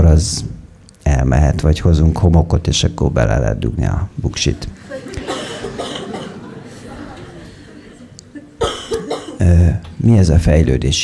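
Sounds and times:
man coughing: 5.1 - 6.5, 8.4 - 9.6.

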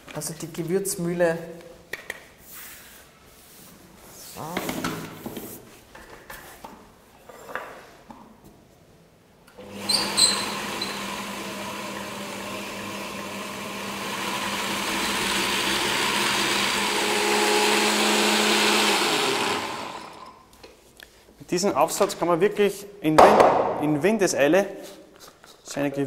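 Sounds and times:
spice mill motor grinding seeds: 9.6 - 20.4.

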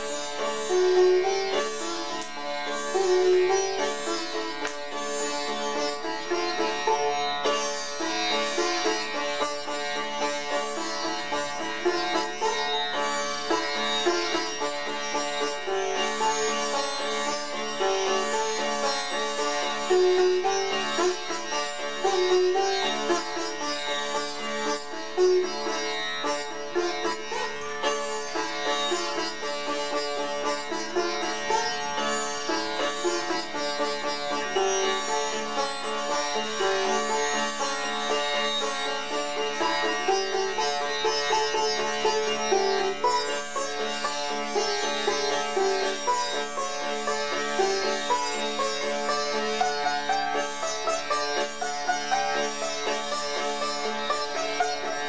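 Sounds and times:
sitar plucked melody: 0.0 - 55.0.

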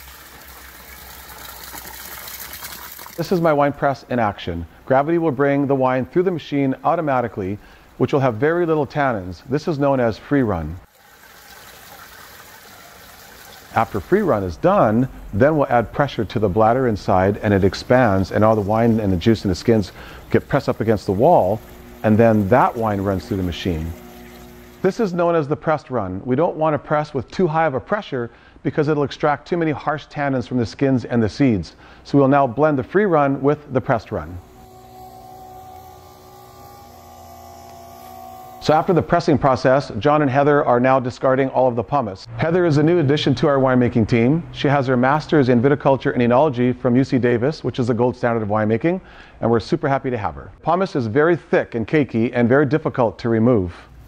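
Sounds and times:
wine pouring into a strainer: 0.0 - 3.4, 10.9 - 14.5, 17.1 - 25.0
electric motor hum: 13.7 - 25.2, 32.5 - 39.6.

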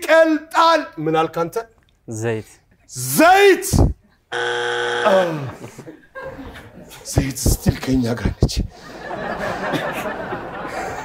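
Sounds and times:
game-show buzzer: 4.3 - 5.5.

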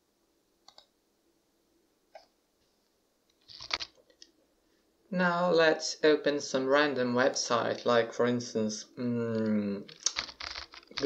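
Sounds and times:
computer mouse clicks: 0.6 - 0.9.

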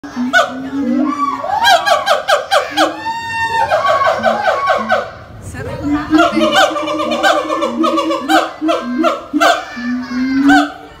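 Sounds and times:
gibbons calling loudly: 0.0 - 11.0.

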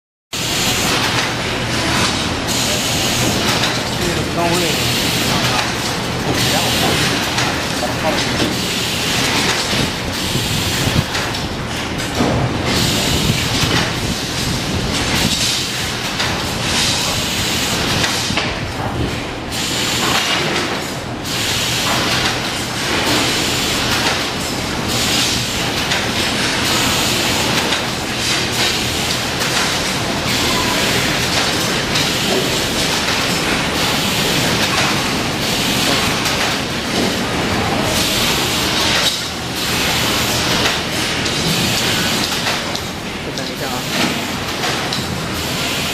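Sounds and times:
machinery running: 0.4 - 45.9.

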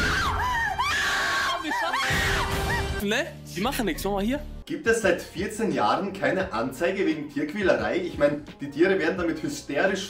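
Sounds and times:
woman screaming in panic: 0.0 - 3.0.

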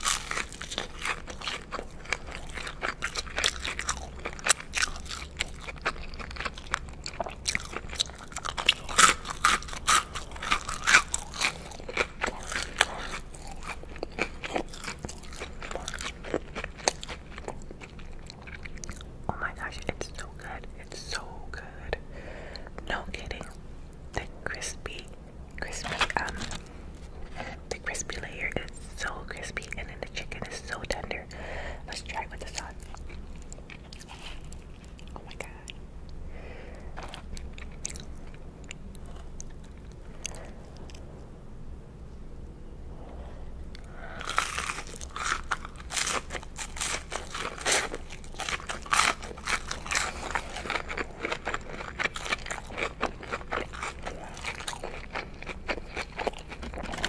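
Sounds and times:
crunching crispy food: 0.0 - 21.2, 31.9 - 35.8, 43.8 - 57.0
wet chewing and mouth sounds: 0.0 - 21.2, 24.9 - 41.2, 43.6 - 57.0.

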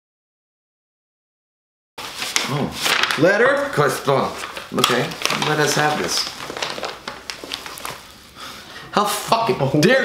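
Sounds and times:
paper rustling and crinkling: 2.0 - 8.3.

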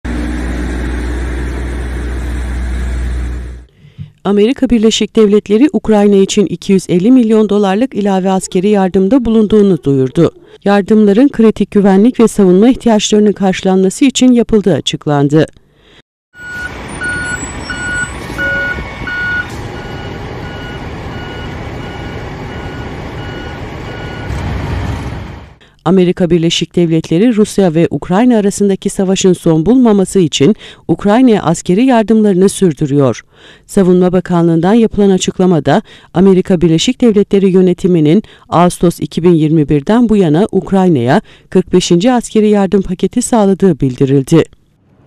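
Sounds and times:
road noise: 0.0 - 3.8, 16.3 - 25.6, 44.7 - 45.0
heavy truck engine rumble: 0.1 - 4.2, 16.4 - 25.6
vehicle reversing alarm beeping: 16.3 - 24.4.

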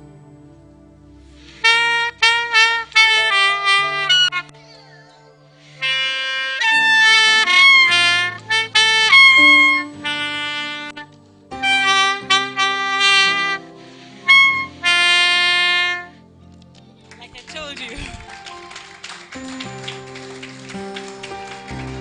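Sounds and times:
saxophone slow melody: 0.6 - 4.6, 5.6 - 16.4.

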